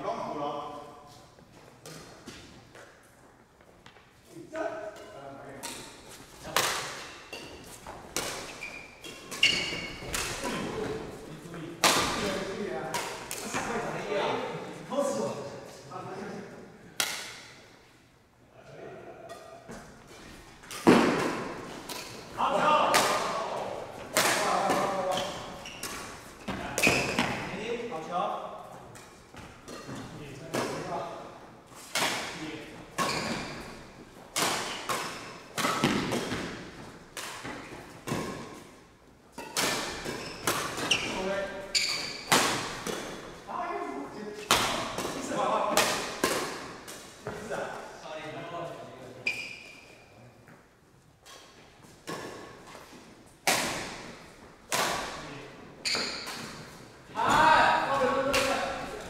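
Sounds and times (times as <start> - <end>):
racket hitting shuttlecock: 4.9 - 11.1, 11.8 - 13.8, 20.6 - 27.5, 31.8 - 43.4, 44.4 - 47.4, 51.2 - 55.2
players' voices: 9.7 - 17.0, 20.9 - 33.6, 42.5 - 49.3, 56.6 - 59.0.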